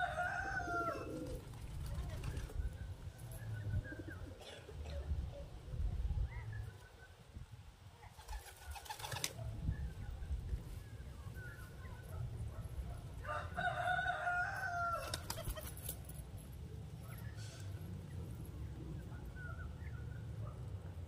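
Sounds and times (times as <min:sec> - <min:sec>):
rooster crowing: 0:00.0 - 0:01.2, 0:13.2 - 0:15.3.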